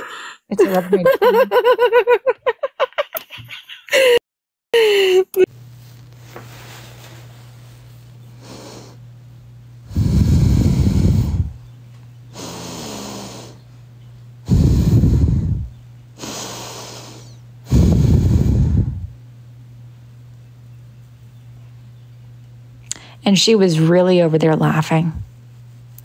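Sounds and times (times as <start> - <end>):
breathy exhale: 9.9 - 11.6, 14.5 - 19.1
person snoring: 9.9 - 11.6, 12.3 - 13.6, 14.5 - 19.1.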